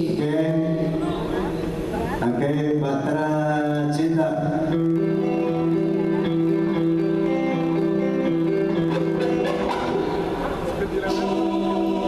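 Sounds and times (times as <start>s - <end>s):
electric guitar notes: 0.0s - 12.0s.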